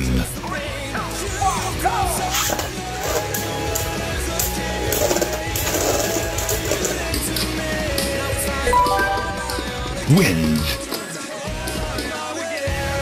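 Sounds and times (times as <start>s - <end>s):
countdown sound effect: 8.7s - 10.4s.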